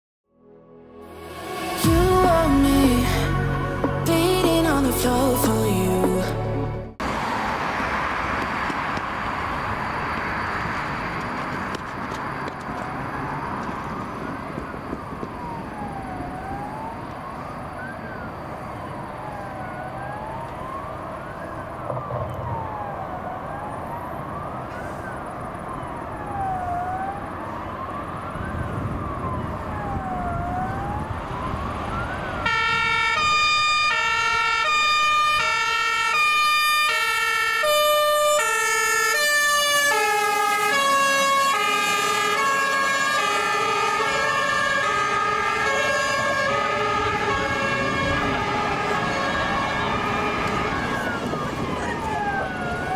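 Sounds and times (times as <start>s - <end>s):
emergency sirens wailing: 1.0s - 52.9s
electronic dance music: 1.1s - 6.9s
low vehicle rumble: 1.4s - 32.5s, 40.6s - 52.9s.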